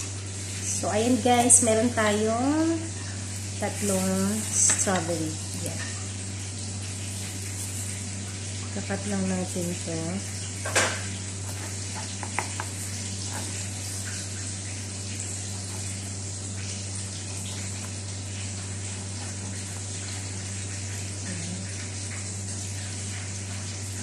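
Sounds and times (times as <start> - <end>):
steady hiss and low hum: 0.0 - 24.0
knife tapping cutting board: 12.2 - 12.7.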